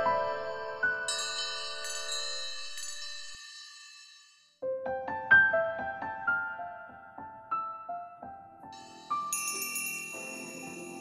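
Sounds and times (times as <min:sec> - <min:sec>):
chime-like bell jingle: 0:00.0 - 0:04.6, 0:08.8 - 0:11.0
high shimmer of bell tones: 0:00.0 - 0:04.6, 0:08.8 - 0:11.0.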